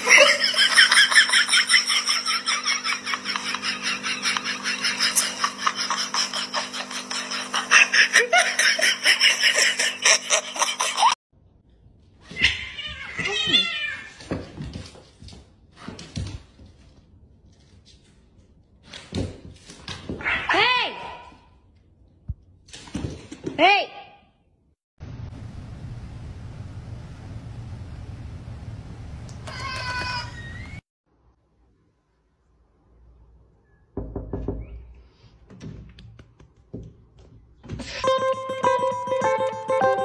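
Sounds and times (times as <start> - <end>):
person laughing: 0.0 - 11.2.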